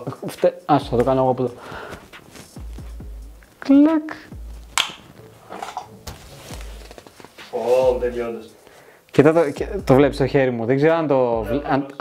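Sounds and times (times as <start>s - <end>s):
background music: 0.0s - 12.0s
sharp click: 4.7s - 5.0s.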